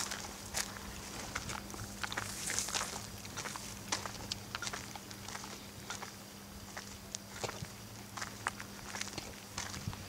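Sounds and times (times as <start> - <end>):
footsteps on gritty concrete: 0.0 - 10.0.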